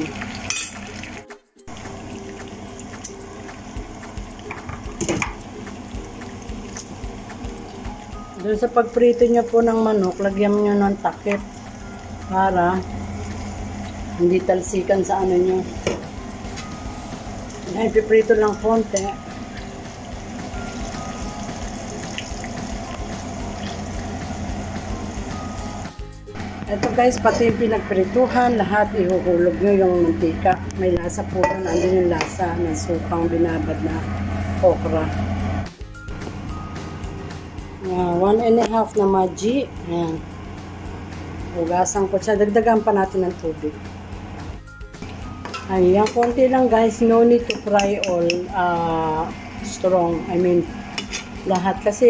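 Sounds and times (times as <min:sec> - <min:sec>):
potatoes sizzling in oil: 0:00.0 - 0:29.0
metal spatula knocking on pan: 0:31.4 - 0:32.4.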